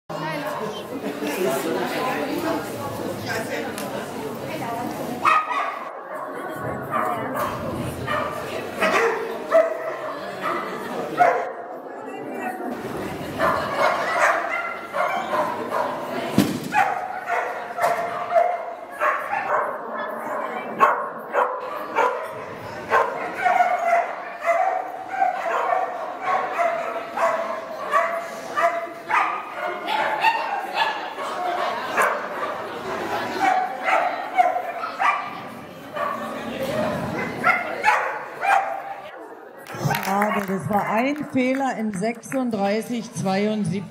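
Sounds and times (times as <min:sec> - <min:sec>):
dog barking and yipping: 0:37.4 - 0:38.8.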